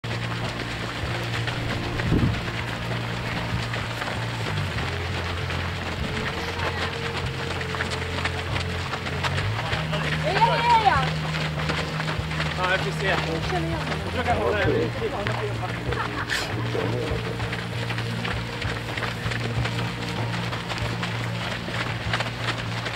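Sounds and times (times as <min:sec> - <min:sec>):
runners' footfalls on dirt path: 0:00.0 - 0:22.9.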